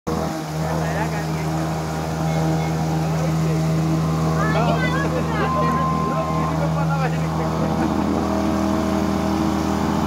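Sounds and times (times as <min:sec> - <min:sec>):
motorcycle engine running: 0:00.1 - 0:10.0.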